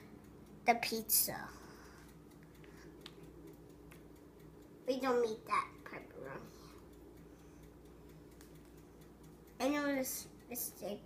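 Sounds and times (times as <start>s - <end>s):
faint steady hum: 0.0s - 11.0s
faint small clicks: 2.0s - 4.5s, 6.7s - 9.6s.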